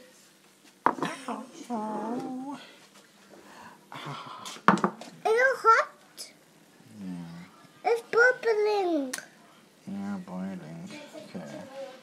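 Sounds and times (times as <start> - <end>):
young child making wordless sounds: 5.2 - 6.4, 7.8 - 9.3.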